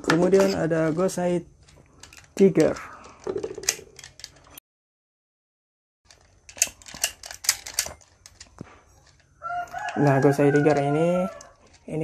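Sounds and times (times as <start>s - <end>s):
plastic toy clicking and clattering: 0.0s - 4.6s, 6.1s - 12.0s.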